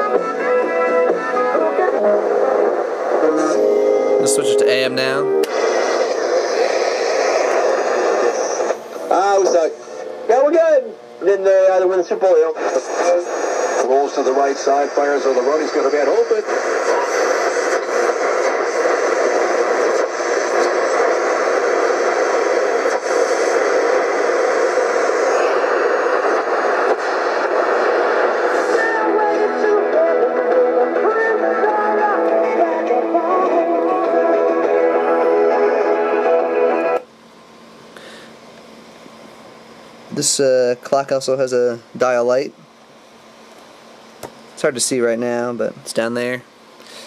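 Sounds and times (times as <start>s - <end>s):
music from radio speaker: 0.0s - 37.1s
radio static: 1.9s - 33.9s.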